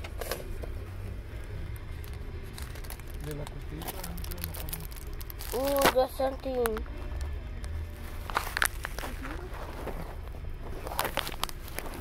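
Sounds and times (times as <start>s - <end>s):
packaging crackling: 1.7s - 6.8s, 8.2s - 12.0s.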